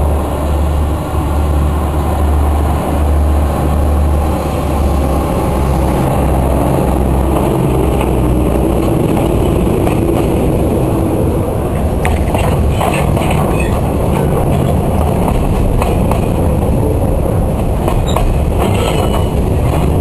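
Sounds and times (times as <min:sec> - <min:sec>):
diesel locomotive engine drone: 0:00.0 - 0:20.0
wagons rolling on rails: 0:05.0 - 0:20.0.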